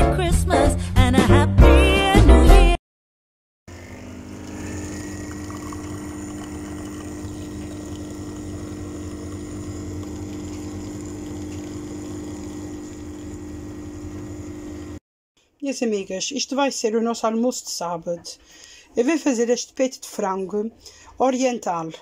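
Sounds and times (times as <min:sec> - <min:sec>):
coffee machine pump humming: 0:03.7 - 0:15.0
liquid streaming into cup: 0:03.7 - 0:15.0.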